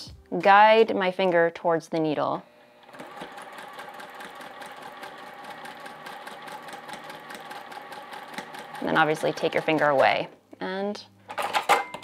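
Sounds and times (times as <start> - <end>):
sewing machine stitching: 2.8 - 10.2.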